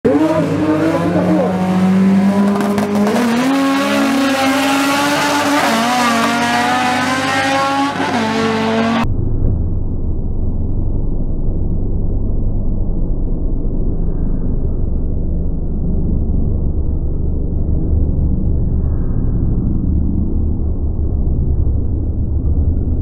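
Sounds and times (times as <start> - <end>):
car engine at high revs: 0.0 - 9.1
tyre squeal: 5.6 - 6.8
muffled low rumble: 8.2 - 23.0.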